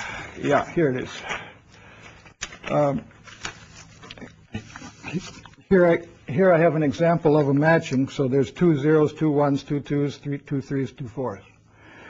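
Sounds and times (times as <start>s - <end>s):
paper sheets rustling: 0.5s - 5.7s.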